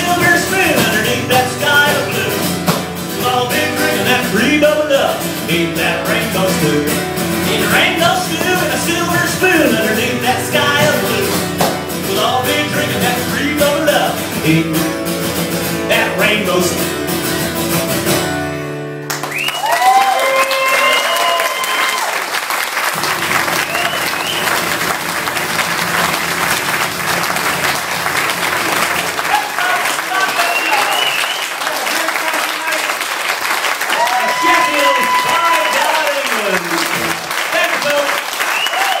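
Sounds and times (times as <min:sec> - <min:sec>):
audience applauding and cheering: 0:19.0 - 0:39.0
whooping shouts: 0:19.4 - 0:22.2, 0:33.9 - 0:36.6, 0:38.5 - 0:39.0.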